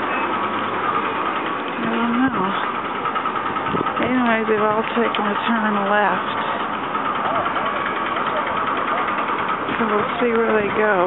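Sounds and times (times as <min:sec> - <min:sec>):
engine hum: 0:00.0 - 0:11.0
faint voices: 0:04.0 - 0:11.0.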